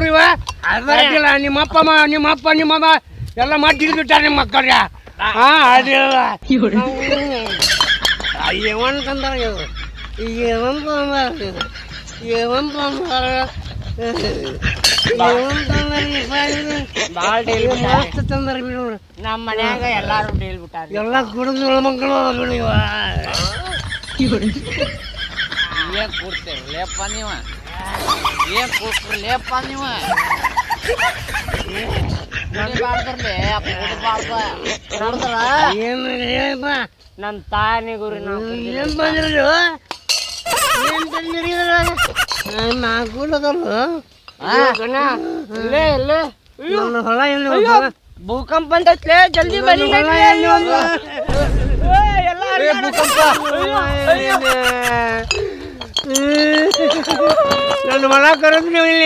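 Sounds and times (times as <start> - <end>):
glass bottles clinking: 7.4 - 9.1, 14.2 - 15.5, 23.2 - 29.5, 39.9 - 41.2, 54.4 - 59.0
man making squawky wavering sounds: 22.7 - 25.2, 25.8 - 29.6, 40.5 - 42.6
man wailing: 51.8 - 55.2, 56.2 - 58.1.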